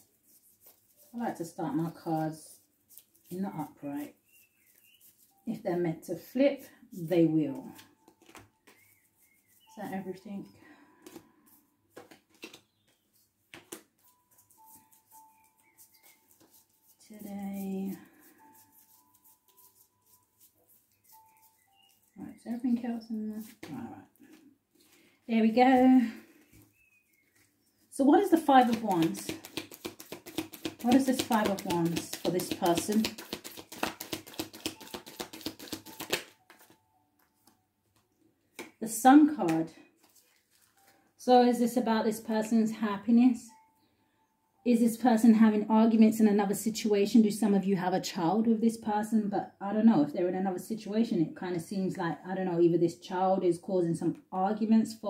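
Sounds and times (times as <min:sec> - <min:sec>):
cards being shuffled: 0:00.1 - 0:02.2, 0:02.8 - 0:03.7, 0:06.9 - 0:10.0, 0:11.0 - 0:22.6, 0:23.3 - 0:25.0, 0:28.3 - 0:37.6, 0:39.5 - 0:40.9
cards tapping and clicking: 0:07.7 - 0:09.6, 0:11.0 - 0:11.2, 0:11.9 - 0:14.8, 0:28.4 - 0:38.8.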